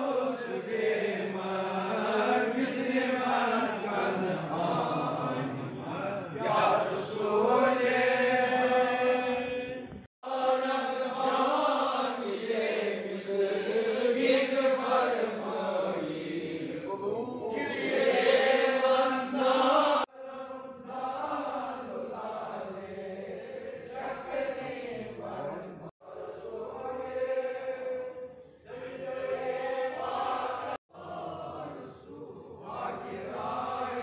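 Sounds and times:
men chanting melodically: 0:00.0 - 0:34.0.

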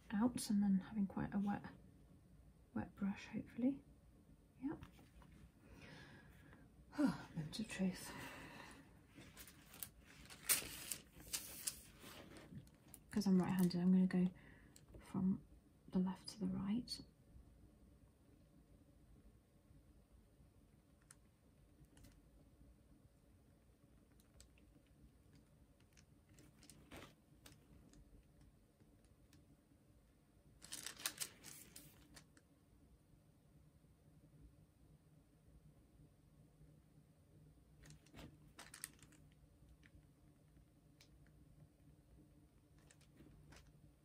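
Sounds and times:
paper towel rustling: 0:09.1 - 0:12.7
paper towel crinkles: 0:09.1 - 0:13.0, 0:30.6 - 0:32.2, 0:37.8 - 0:39.1.

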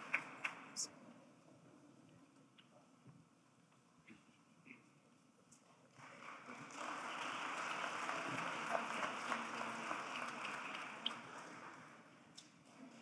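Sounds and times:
audience applauding: 0:05.9 - 0:12.2.

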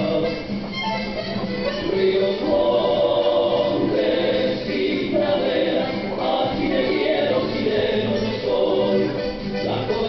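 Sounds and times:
group singing folk song: 0:00.0 - 0:00.7, 0:01.4 - 0:10.0.

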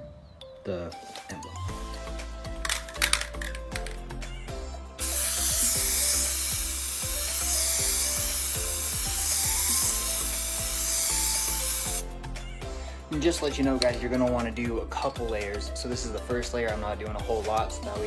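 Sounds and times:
background music: 0:00.0 - 0:18.0
aerosol can spraying hiss: 0:05.0 - 0:12.2.

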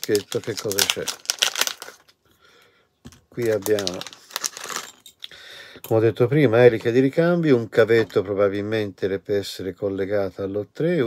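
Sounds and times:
plastic bag crinkling: 0:00.0 - 0:02.2, 0:03.1 - 0:05.2.

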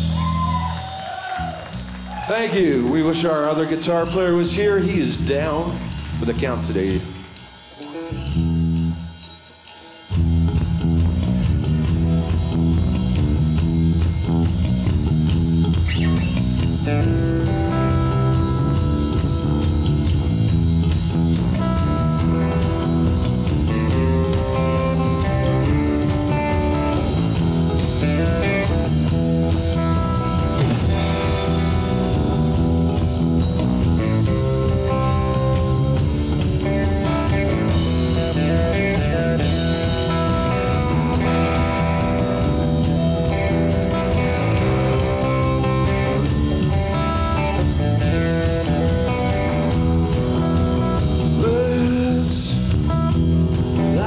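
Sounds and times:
rock band playing: 0:00.0 - 0:54.0.

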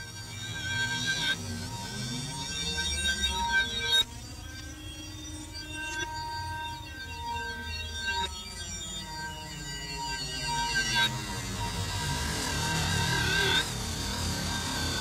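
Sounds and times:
wavering high electronic tones: 0:00.1 - 0:15.0.

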